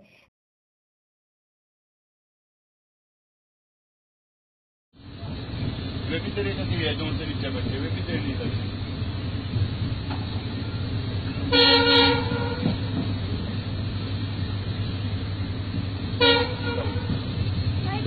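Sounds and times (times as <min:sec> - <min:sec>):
train rumbling: 0:05.0 - 0:18.0
train horn blasts: 0:11.5 - 0:13.0, 0:16.1 - 0:17.3.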